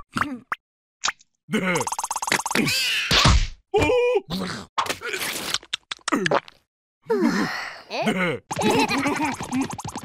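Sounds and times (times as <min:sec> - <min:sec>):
cartoon voices laughing: 0:08.0 - 0:09.8.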